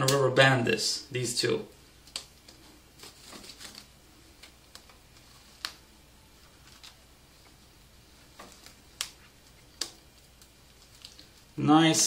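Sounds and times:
rubber band snapping: 0:02.0 - 0:05.8, 0:08.3 - 0:11.3.

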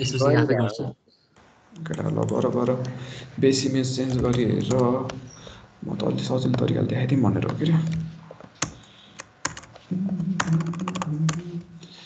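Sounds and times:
computer keyboard keystrokes: 0:07.4 - 0:11.5.

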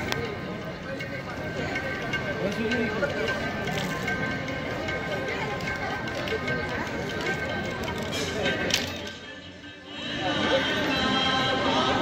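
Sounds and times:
crowd hum: 0:04.4 - 0:12.0.

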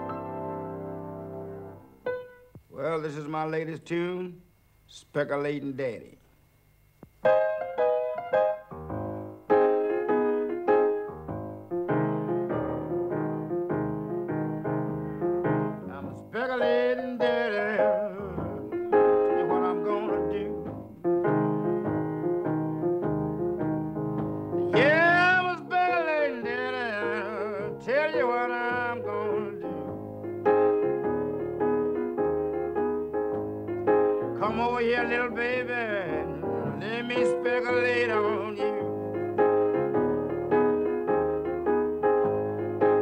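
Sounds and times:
blues piano: 0:00.0 - 0:03.3, 0:07.0 - 0:43.0
man's wordless singing: 0:15.9 - 0:20.6, 0:24.7 - 0:29.9, 0:34.4 - 0:39.0.

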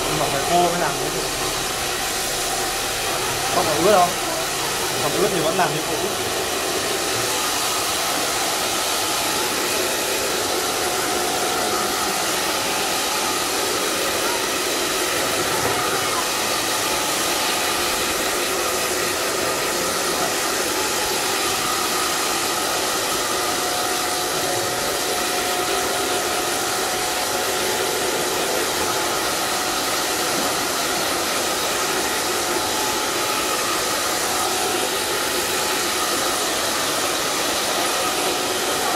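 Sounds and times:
hair dryer running: 0:00.0 - 0:38.9.

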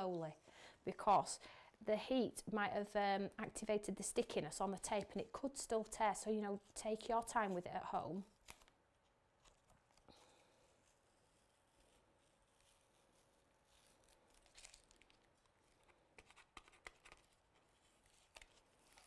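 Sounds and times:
paper card being handled: 0:08.3 - 0:19.0
masking tape peeling off paper: 0:10.7 - 0:19.0.

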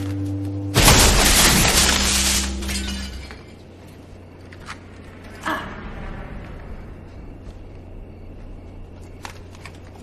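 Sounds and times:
low steady tones: 0:00.0 - 0:10.0
glass shattering: 0:00.8 - 0:03.6.

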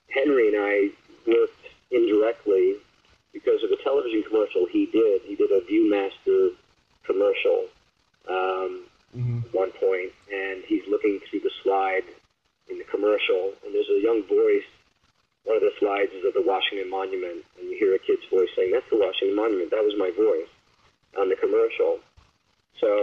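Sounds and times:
man talking: 0:00.1 - 0:02.8, 0:03.4 - 0:07.7, 0:08.3 - 0:12.1, 0:12.7 - 0:14.7, 0:15.5 - 0:20.5, 0:21.2 - 0:22.0, 0:22.8 - 0:23.0.

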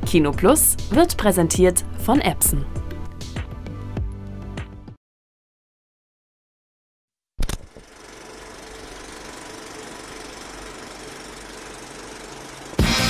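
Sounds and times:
sharp click: 0:07.4 - 0:07.8
small machine rattling: 0:07.4 - 0:13.0
loud music: 0:12.8 - 0:13.0.

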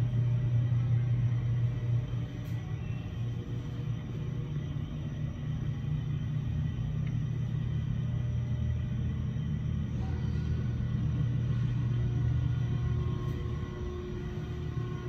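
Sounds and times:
elevator low rumble: 0:00.0 - 0:15.0
machinery hum: 0:00.0 - 0:15.0.

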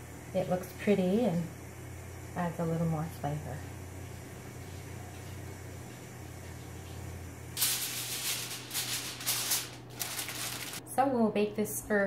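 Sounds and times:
low steady hum: 0:00.0 - 0:12.0
aluminium foil crinkling: 0:07.6 - 0:10.8.

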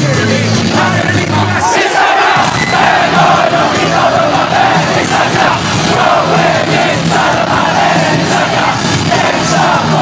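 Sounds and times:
rock band playing faintly: 0:00.0 - 0:10.0
crowd chanting in unison: 0:00.6 - 0:10.0.

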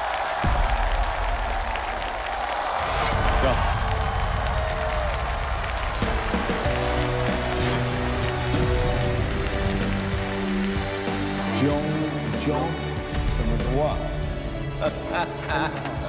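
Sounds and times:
audience applause: 0:00.0 - 0:13.3.

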